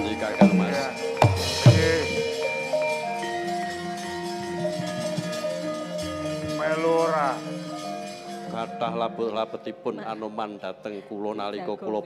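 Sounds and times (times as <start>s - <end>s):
gamelan playing softly: 0.0s - 9.4s.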